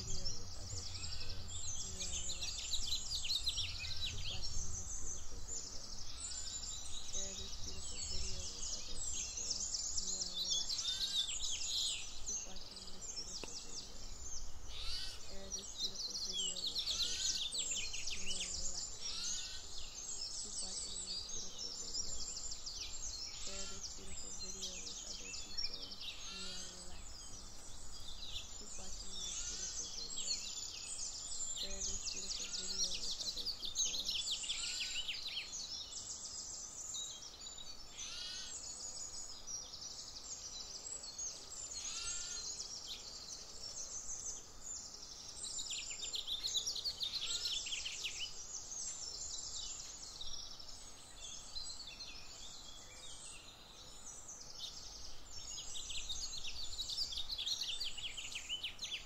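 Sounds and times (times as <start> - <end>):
faint steady hiss: 0.0 - 59.0
songbirds chirping and trilling: 0.0 - 59.0.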